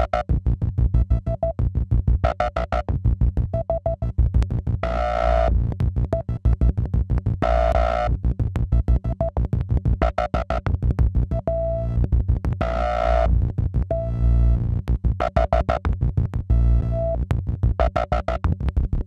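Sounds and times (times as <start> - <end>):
low synth pulse: 0.0 - 19.0
rapid percussive synth notes: 17.8 - 18.6.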